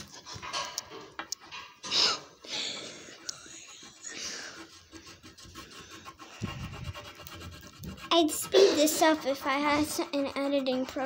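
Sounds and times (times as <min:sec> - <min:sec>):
crayon scratching on paper: 0:03.3 - 0:11.0.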